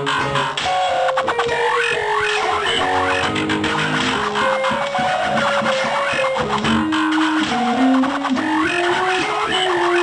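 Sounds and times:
electric guitar sliding notes: 0:00.0 - 0:10.0.

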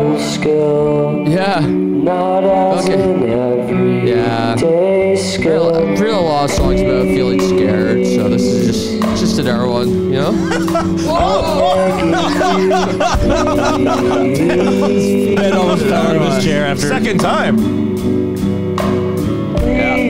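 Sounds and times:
man singing long notes: 0:00.0 - 0:09.4, 0:10.4 - 0:17.9, 0:19.6 - 0:20.0
acoustic guitar with effects: 0:00.0 - 0:20.0
keyboard: 0:00.0 - 0:20.0.

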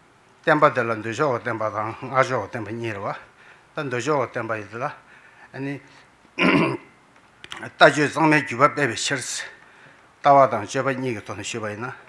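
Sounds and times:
man speaking: 0:00.5 - 0:06.6, 0:07.5 - 0:09.6, 0:10.2 - 0:12.0
man clearing throat: 0:06.4 - 0:06.9.

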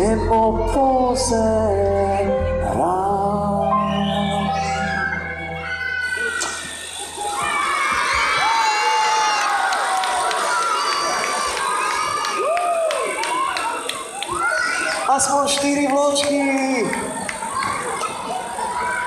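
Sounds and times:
band music: 0:00.0 - 0:06.8
children shouting and cheering: 0:00.0 - 0:19.0.

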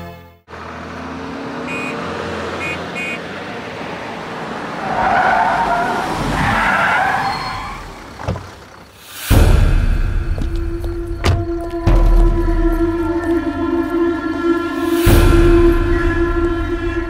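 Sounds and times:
car driving road noise: 0:00.4 - 0:17.0
tyres squealing: 0:04.5 - 0:09.0.

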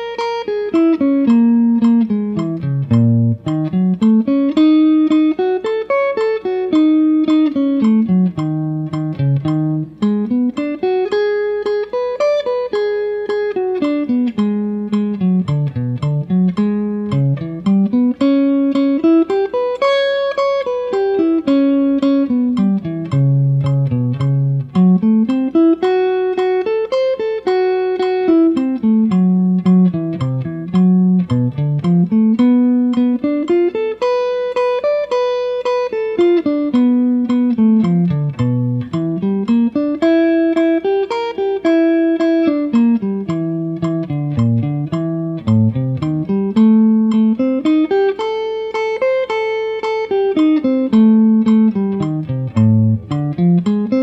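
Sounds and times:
electric guitar arpeggios: 0:00.0 - 0:54.0.

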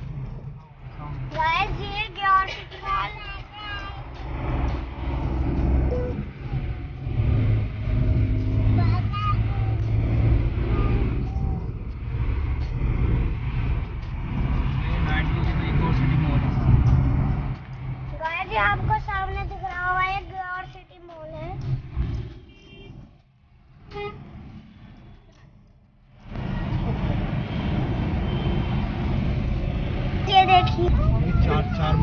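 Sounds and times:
car road rumble: 0:00.0 - 0:32.0.

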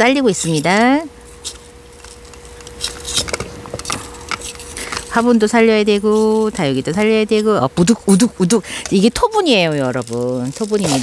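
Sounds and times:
metal tool scraping inside pot: 0:04.0 - 0:05.3.

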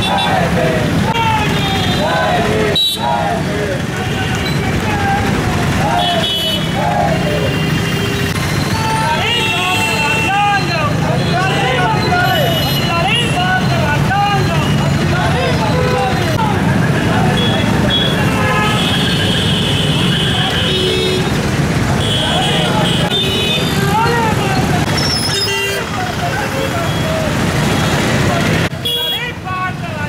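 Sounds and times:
people talking: 0:00.0 - 0:07.6, 0:08.7 - 0:18.8, 0:21.9 - 0:30.0
road traffic rumble: 0:00.0 - 0:30.0
vehicle horns: 0:01.1 - 0:04.8, 0:05.8 - 0:13.5, 0:17.0 - 0:24.1, 0:24.9 - 0:28.0, 0:28.7 - 0:29.4.

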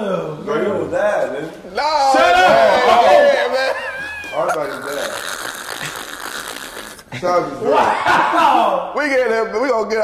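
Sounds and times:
person squealing: 0:02.8 - 0:08.4.

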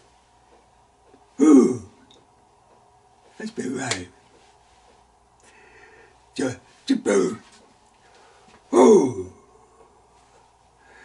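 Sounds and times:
man clearing throat: 0:01.4 - 0:02.0.

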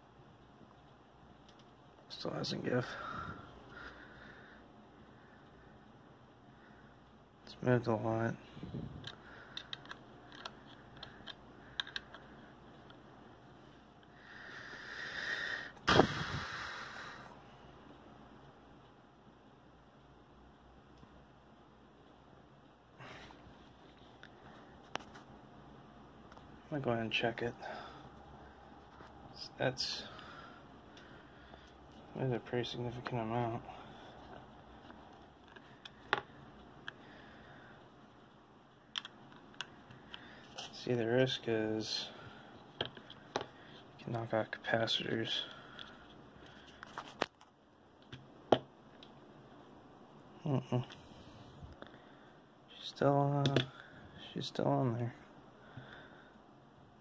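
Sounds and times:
faint hiss: 0:14.1 - 0:17.7.

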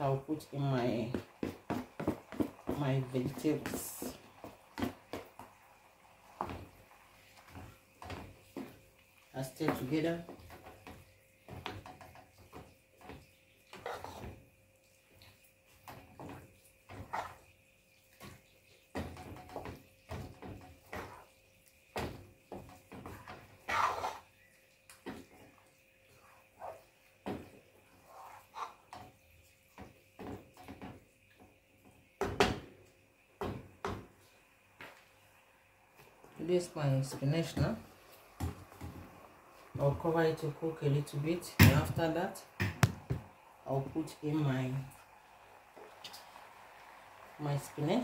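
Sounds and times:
wooden spoon stirring stew: 0:00.0 - 0:48.0.

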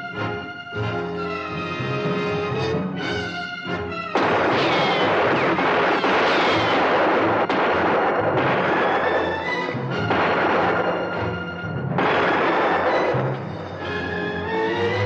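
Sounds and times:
dramatic orchestral music: 0:00.0 - 0:15.0
revolver gunshots: 0:04.1 - 0:13.9
whining ricochets: 0:04.2 - 0:09.2
bullets striking dirt: 0:04.2 - 0:11.0.

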